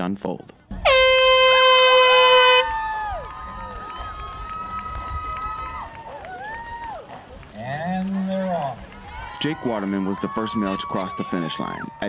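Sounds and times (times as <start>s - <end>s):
air horn: 0.8s - 2.8s
crowd cheering and shouting: 2.4s - 12.0s.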